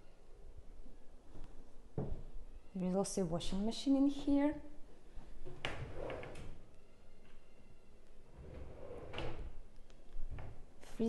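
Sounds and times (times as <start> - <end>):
drawer sliding on runners: 5.7 - 6.5, 8.4 - 9.5.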